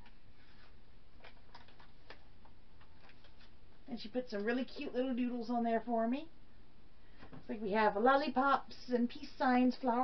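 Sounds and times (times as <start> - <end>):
faint room background: 0.0 - 10.0.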